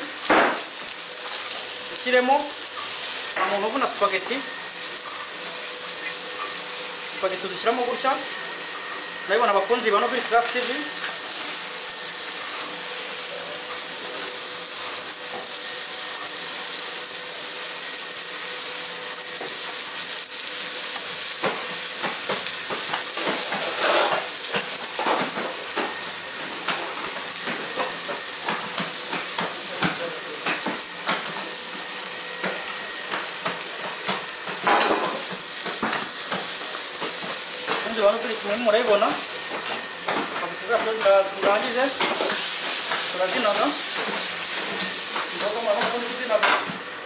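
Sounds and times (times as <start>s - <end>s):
vegetables sizzling in a wok: 0.0s - 47.0s
utensil scraping a pan: 23.2s - 24.3s.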